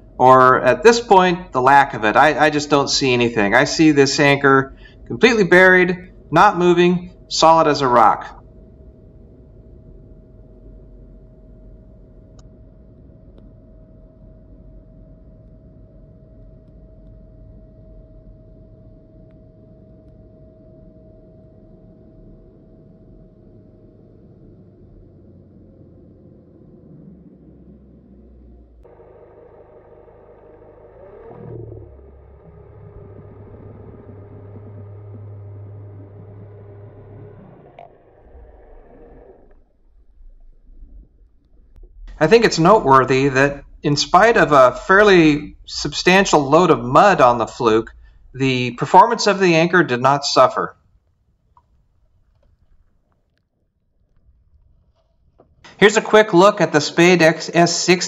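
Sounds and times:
boat engine heard underwater: 0:00.0 - 0:58.0
engine hum: 0:00.0 - 0:58.0.

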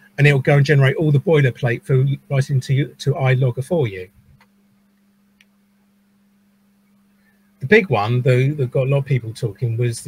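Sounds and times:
faint steady hum: 0:00.0 - 0:10.0
faint click: 0:05.4 - 0:05.6.

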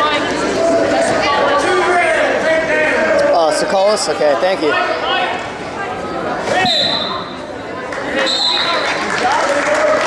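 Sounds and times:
referee's whistle: 0:06.6 - 0:07.3, 0:08.2 - 0:08.8.

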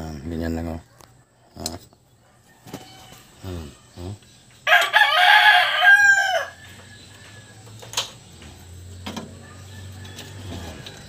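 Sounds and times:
rooster crowing: 0:02.3 - 0:04.0, 0:04.6 - 0:07.7, 0:09.3 - 0:11.0.

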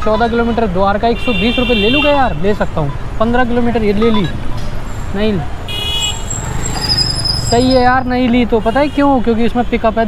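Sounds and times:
street traffic noise: 0:00.0 - 0:10.0
vehicle horn toot: 0:01.2 - 0:02.4, 0:05.7 - 0:07.1.

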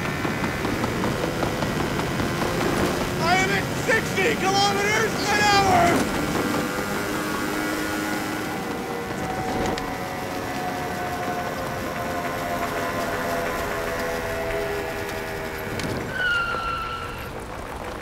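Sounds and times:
scooter engine running: 0:00.0 - 0:18.0
wind and road noise: 0:00.0 - 0:18.0.

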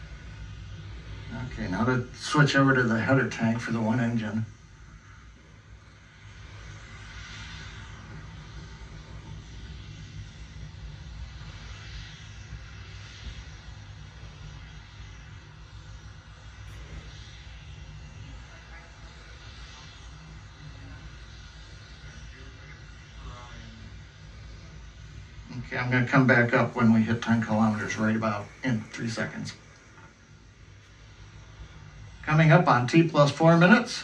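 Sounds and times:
faint low rocket engine rumble: 0:00.0 - 0:34.0.

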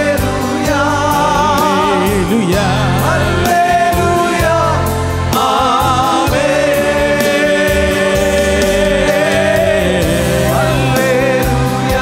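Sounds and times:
backing voices singing: 0:00.0 - 0:12.0
band accompaniment: 0:00.0 - 0:12.0
man singing lead: 0:00.0 - 0:12.0.

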